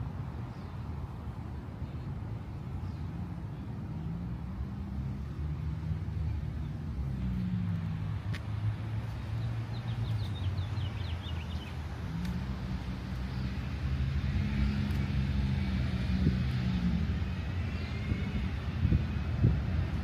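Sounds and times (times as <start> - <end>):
vehicle engine drone: 0.0 - 20.0.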